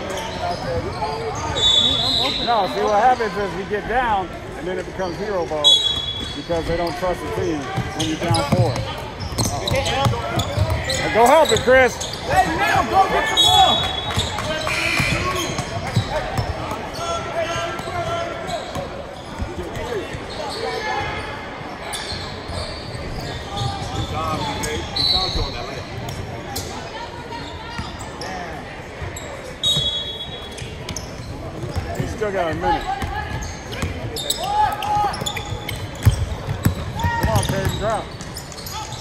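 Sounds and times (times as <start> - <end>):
shoe squeaks: 0.0 - 3.5, 4.9 - 39.0.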